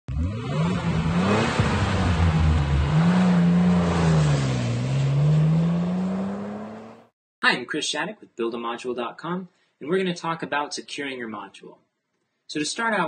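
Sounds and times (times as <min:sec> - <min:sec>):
car engine revving: 0:00.1 - 0:07.1.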